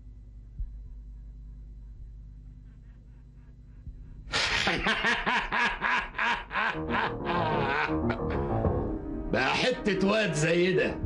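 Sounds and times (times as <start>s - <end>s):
man laughing heartily: 4.3s - 8.7s
background music: 6.2s - 11.0s.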